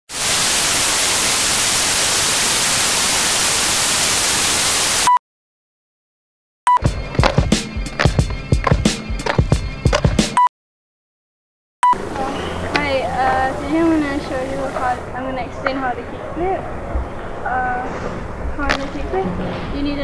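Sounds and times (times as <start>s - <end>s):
loud static hiss: 0.1s - 5.1s, 12.0s - 19.2s
music with sharp percussive hits: 6.8s - 10.5s.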